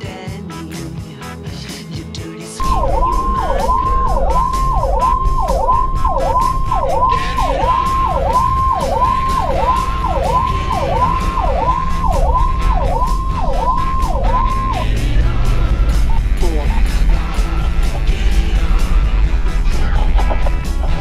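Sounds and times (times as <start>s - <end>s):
emergency vehicle siren: 2.6s - 18.7s
low rumble of road: 2.6s - 21.0s.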